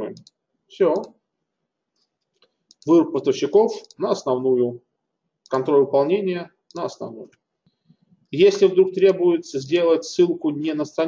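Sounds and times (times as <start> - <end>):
computer mouse click: 0.1 - 1.2.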